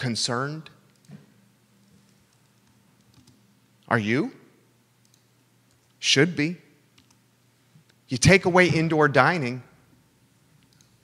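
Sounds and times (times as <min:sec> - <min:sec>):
man speaking: 0:00.0 - 0:00.8, 0:03.9 - 0:04.4, 0:06.0 - 0:06.8, 0:08.1 - 0:09.7.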